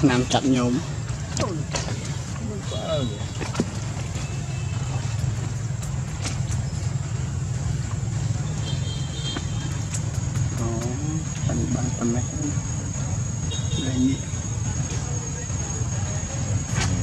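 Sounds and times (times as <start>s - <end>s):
low engine rumble: 0.0s - 17.0s.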